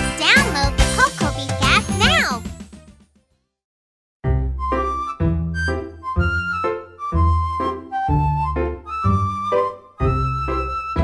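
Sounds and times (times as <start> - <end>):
children's jingle music: 0.0 - 3.0.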